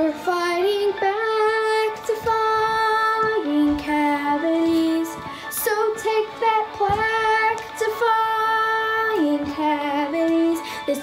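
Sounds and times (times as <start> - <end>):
backing track: 0.0 - 11.0
child singing: 0.0 - 11.0.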